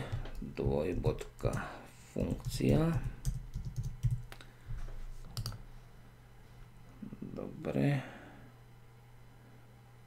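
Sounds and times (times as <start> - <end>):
computer keyboard typing: 0.0 - 4.4, 5.4 - 5.6.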